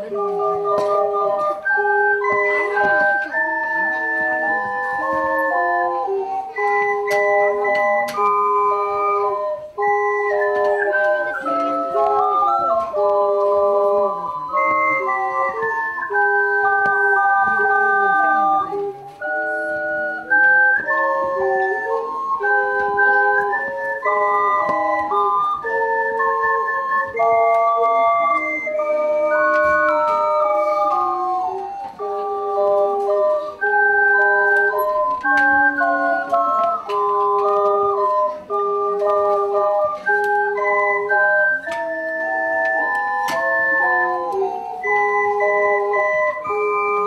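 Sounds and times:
ocarina ensemble playing: 0.0s - 47.0s.

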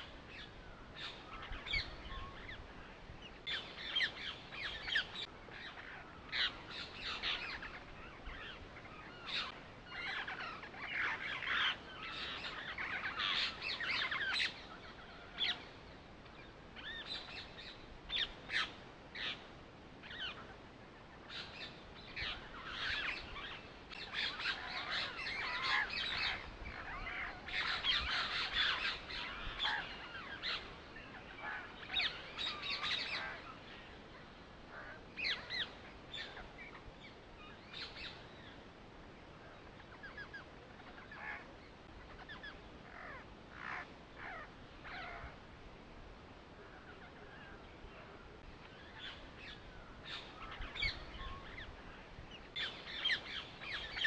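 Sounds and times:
birds chirping and calling: 0.0s - 38.8s, 39.5s - 45.5s, 46.6s - 54.0s.

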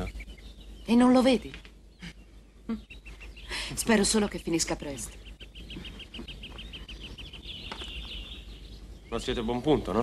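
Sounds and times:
small bird singing: 0.0s - 10.0s.

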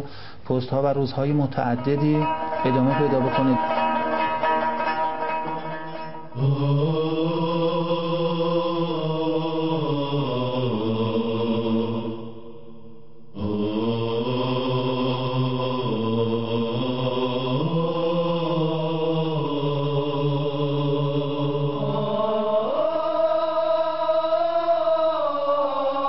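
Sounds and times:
low wordless vocal chanting: 0.0s - 4.4s, 6.3s - 26.0s.

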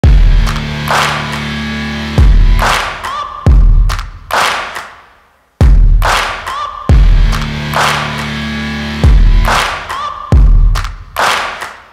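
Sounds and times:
heavy deep bass hit: 0.0s - 1.2s
sharp clap-like hit: 0.0s - 11.9s.

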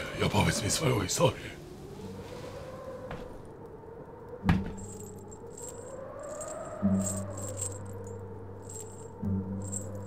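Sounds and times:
metal buckles jingling: 4.7s - 10.0s.

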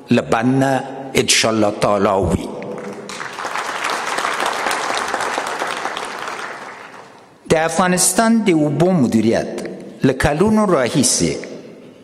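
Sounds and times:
audience applauding: 2.8s - 7.4s.

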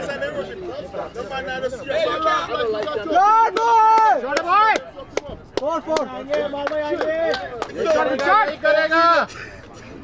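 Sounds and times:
players shouting calls: 0.0s - 9.3s.

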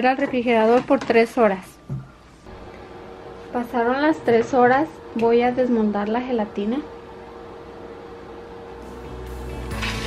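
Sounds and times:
background music with bass: 8.8s - 10.0s.

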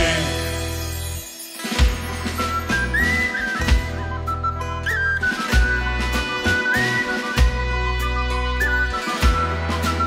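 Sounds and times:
whistled melody: 1.2s - 10.0s.

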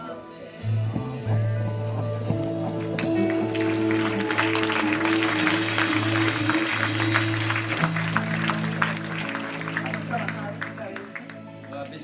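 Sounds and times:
sustained keyboard chords: 0.0s - 12.0s
congregation applauding: 2.4s - 12.0s.

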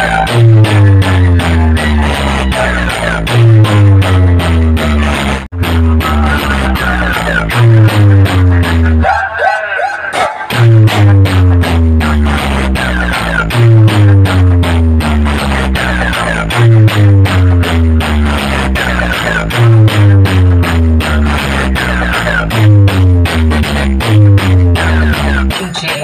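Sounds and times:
electronic dance music: 0.0s - 26.0s.

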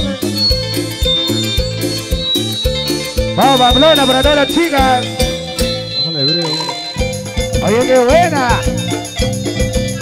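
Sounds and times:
live band instrumental music: 0.0s - 10.0s.

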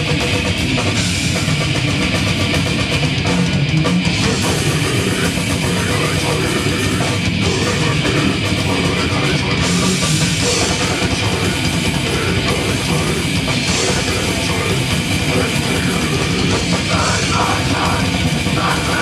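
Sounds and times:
distorted electric guitars: 0.0s - 19.0s
drum kit: 0.0s - 19.0s.

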